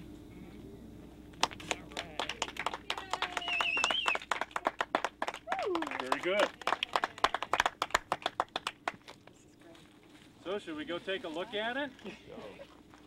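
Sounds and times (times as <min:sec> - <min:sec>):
group clapping: 0:01.3 - 0:09.4
voices cheering: 0:02.0 - 0:07.6.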